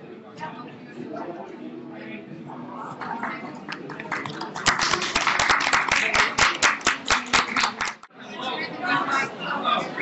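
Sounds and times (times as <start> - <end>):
audience applauding: 3.1 - 8.1
loud close hand claps: 3.7 - 8.1.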